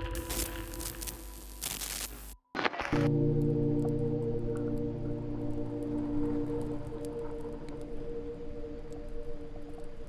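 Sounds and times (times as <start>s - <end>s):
crackling glitch noise: 0.0s - 10.0s.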